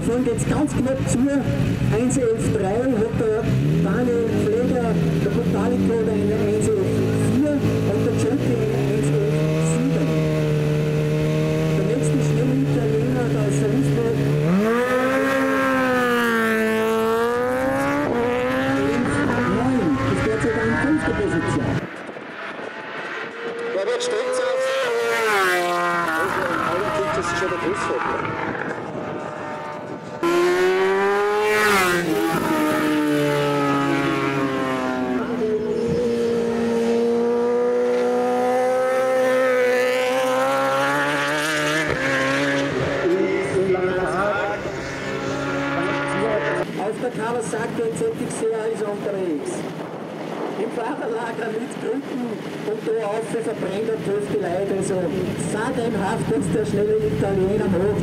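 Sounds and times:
racing motorcycle accelerating: 0.0 - 58.0.

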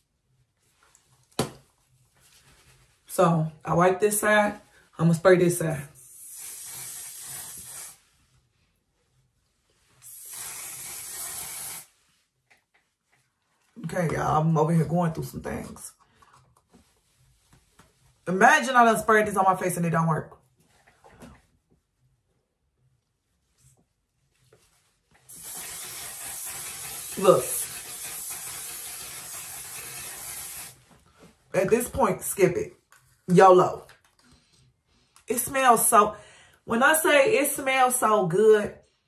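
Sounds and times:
spray bottle hissing: 6.0 - 8.0, 10.0 - 12.0, 25.3 - 30.8.

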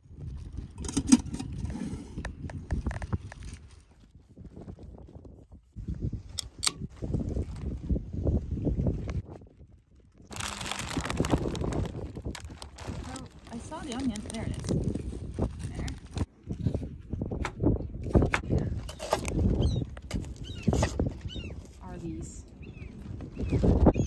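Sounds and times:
wind buffeting microphone: 0.0 - 24.0
plastic snack bag crinkling: 10.3 - 16.3.

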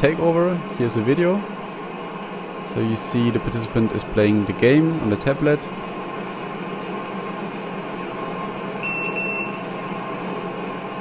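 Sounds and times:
steady hum: 0.0 - 11.0
short high-pitched beep: 8.8 - 9.6.

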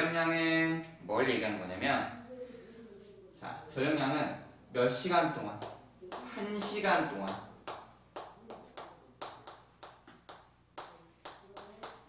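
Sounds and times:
chalk tapping on chalkboard: 5.6 - 12.0.

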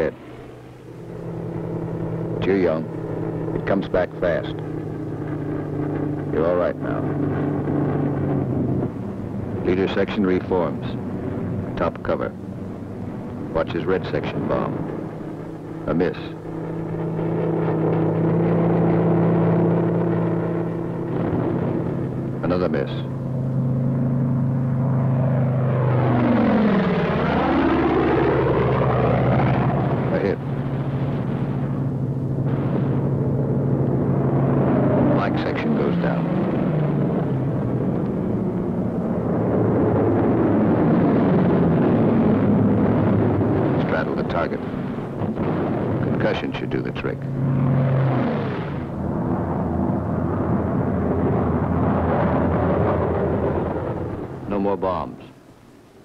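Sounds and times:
propeller plane engines droning: 0.0 - 56.0.

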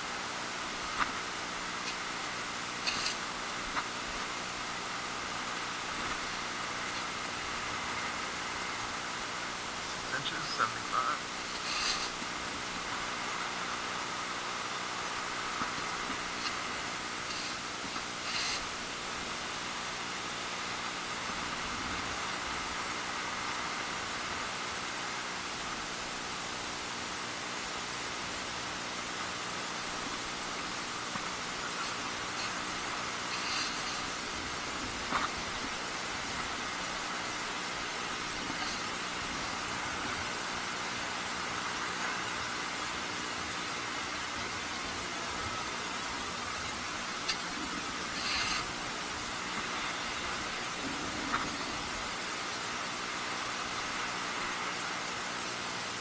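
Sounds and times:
steady hiss: 0.0 - 56.0
metal scoop scraping sand: 2.8 - 3.3, 11.4 - 12.2, 17.1 - 18.8, 31.8 - 35.7, 48.0 - 48.8.

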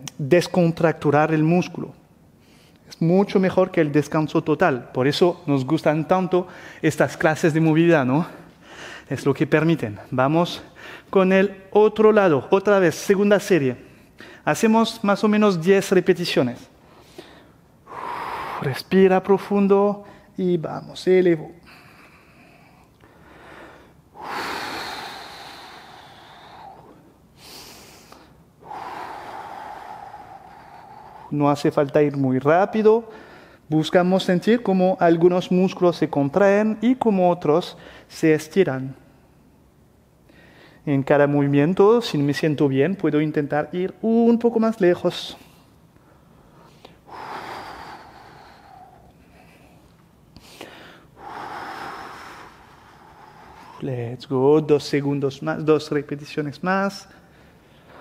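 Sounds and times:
man breathing deeply: 6.5 - 6.8, 8.3 - 9.1, 10.7 - 11.1, 13.8 - 14.5, 16.7 - 18.9, 21.6 - 31.4, 33.0 - 33.7, 40.2 - 40.8, 45.3 - 53.9, 57.1 - 58.0.

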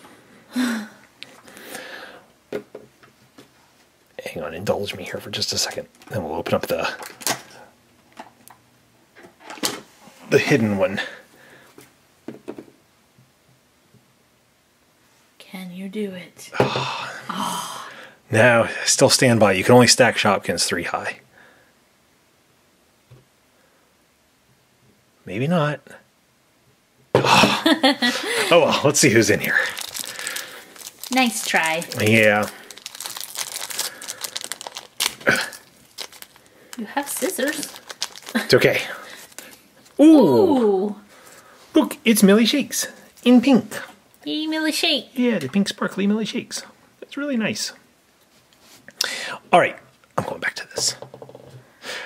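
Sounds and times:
foil packet crinkling: 28.2 - 40.0
handling plastic figures: 28.8 - 40.0.

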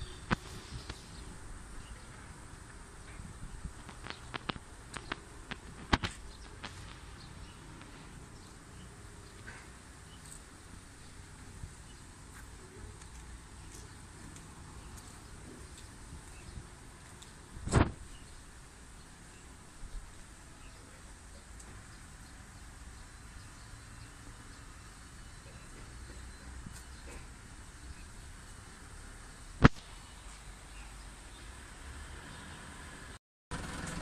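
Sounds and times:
faint background noise: 0.0 - 34.0.

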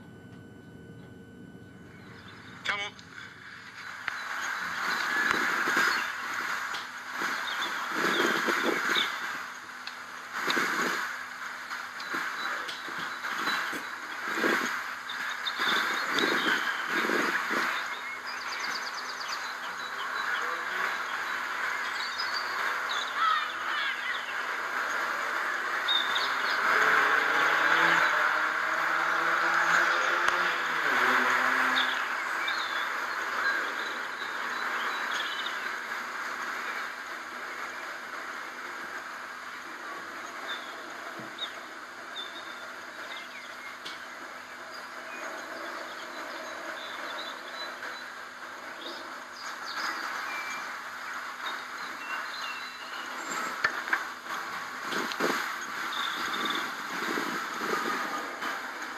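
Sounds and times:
steady hiss: 3.4 - 27.2, 30.8 - 58.9
bird chirps: 12.0 - 25.0, 48.8 - 53.7, 54.9 - 58.0
passing engine drone: 25.6 - 34.6.

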